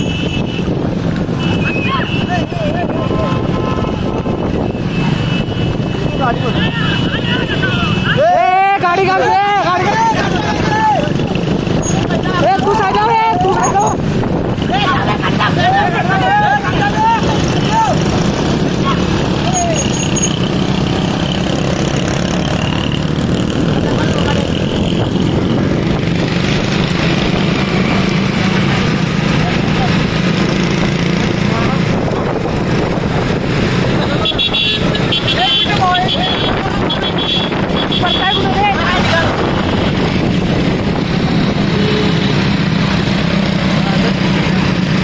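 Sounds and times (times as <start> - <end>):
motorcycle engines running: 0.0 - 45.0
men shouting: 6.1 - 11.4, 14.6 - 20.0, 37.9 - 39.6
high horn beeps: 41.7 - 42.4.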